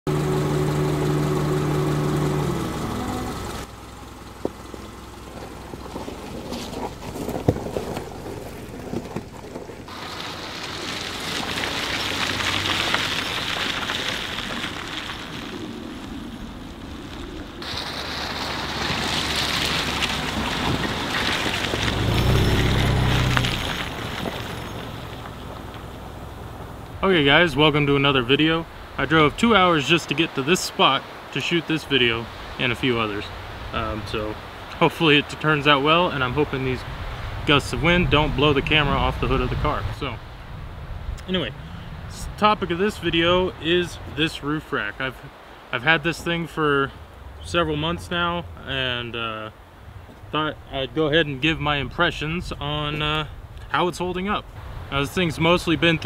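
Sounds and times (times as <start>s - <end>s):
car engine hum: 0.0s - 29.0s, 46.2s - 56.0s
tyres on gravel: 0.1s - 40.2s, 41.2s - 56.0s.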